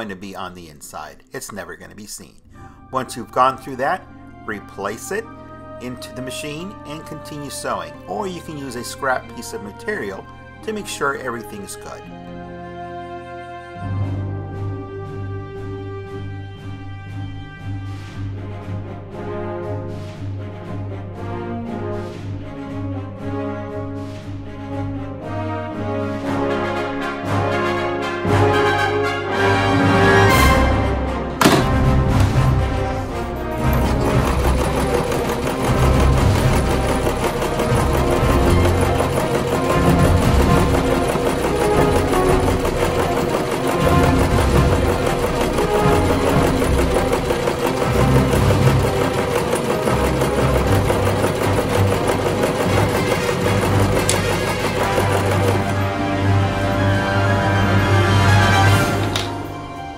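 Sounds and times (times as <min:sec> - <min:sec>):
background music: 0:00.0 - 0:59.9
sewing machine stitching: 0:31.4 - 0:59.6.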